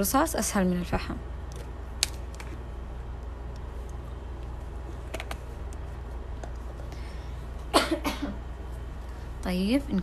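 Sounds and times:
steady low hum: 0.0 - 10.0
woman coughing: 7.7 - 8.5.

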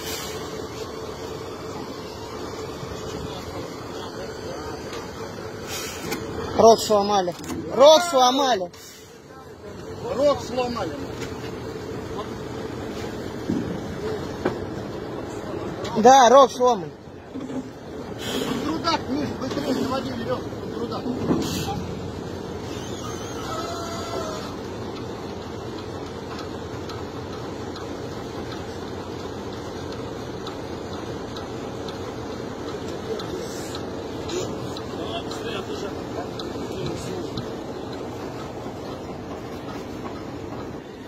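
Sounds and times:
tractor engine running: 0.0 - 41.0.

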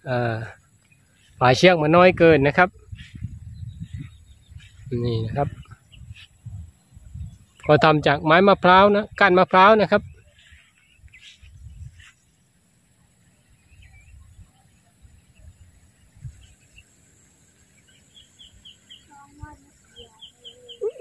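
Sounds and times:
bird chirping: 0.0 - 21.0
wind buffeting microphone: 1.2 - 12.1, 13.6 - 16.8, 18.2 - 21.0.

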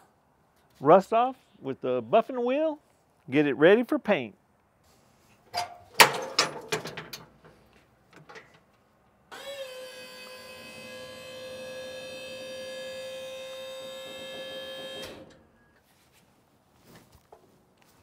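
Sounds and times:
hydraulic pump whining: 9.3 - 15.4.

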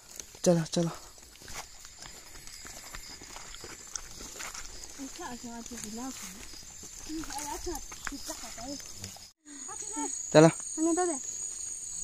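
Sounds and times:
footsteps through grass and leaves: 0.0 - 9.4
rustling vegetation: 0.0 - 12.0.

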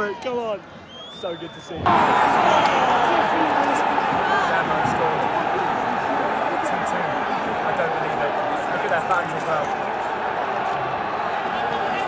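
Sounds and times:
football crowd chanting: 1.8 - 12.0.

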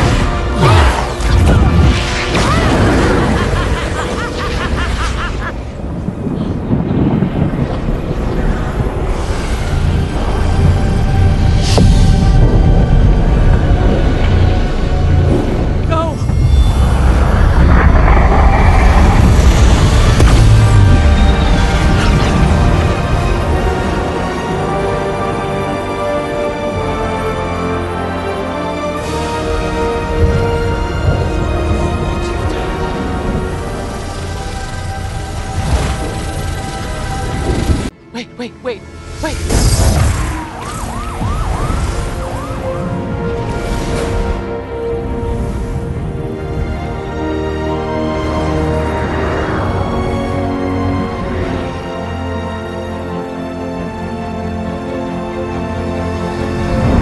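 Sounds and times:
deep steady rumble: 5.8 - 24.6
police siren yelping: 40.4 - 43.1.

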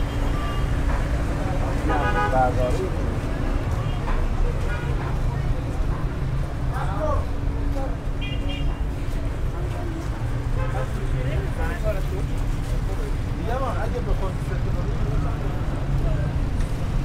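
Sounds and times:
road traffic rumble: 0.0 - 17.0.

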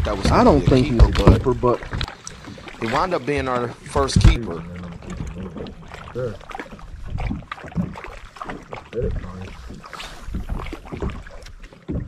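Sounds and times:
wind rumbling on microphone: 3.7 - 12.0.

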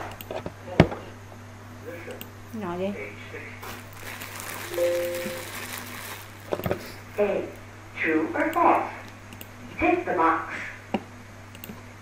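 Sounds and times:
quiet music: 4.4 - 5.8
held tone: 4.7 - 5.5
sharp clicks: 9.3 - 9.5, 11.5 - 11.8.

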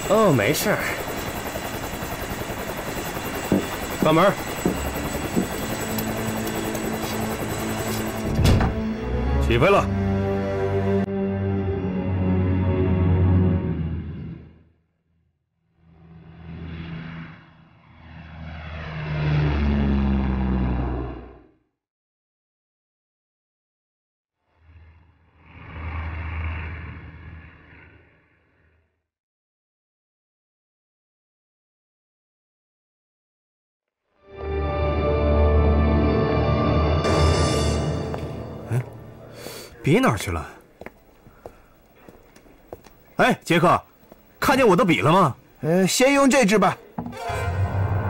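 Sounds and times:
propeller plane engines droning: 0.0 - 11.1, 16.2 - 21.0.

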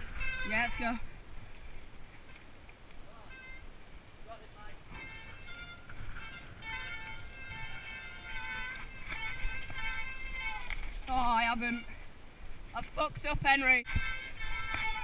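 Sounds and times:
tyre and wind rumble: 0.0 - 15.0.

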